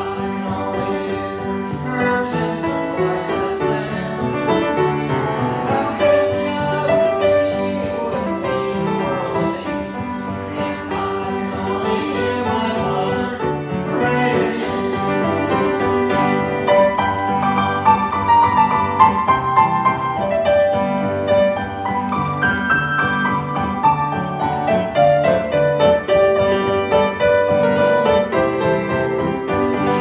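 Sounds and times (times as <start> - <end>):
upright piano gospel song: 0.0 - 30.0.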